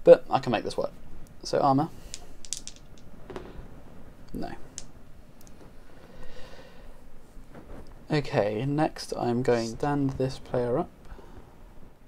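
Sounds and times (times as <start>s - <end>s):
dice rolling on table: 2.1s - 3.1s, 4.7s - 4.9s.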